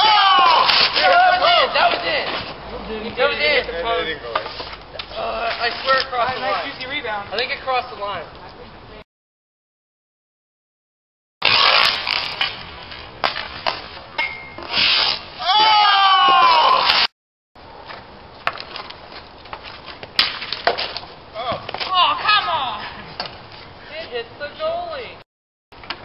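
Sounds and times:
players shouting: 0.0 - 2.3
hockey sticks clacking on concrete: 0.4 - 8.2, 17.9 - 22.3.

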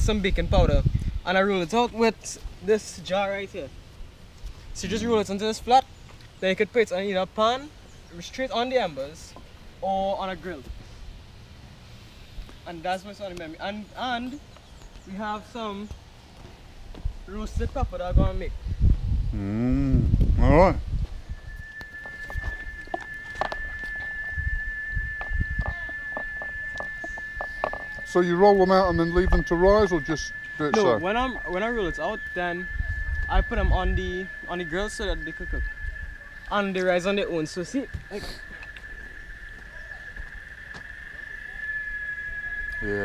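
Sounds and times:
high insect drone: 15.0 - 20.0, 20.8 - 43.0
thin high tone: 21.2 - 43.0.

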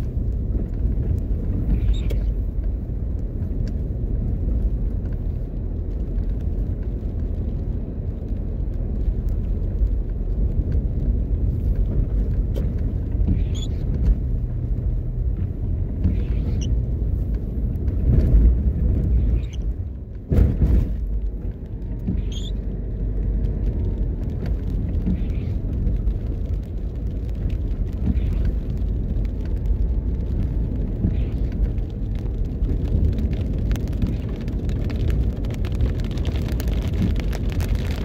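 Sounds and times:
car driving on wet street: 0.0 - 38.0.

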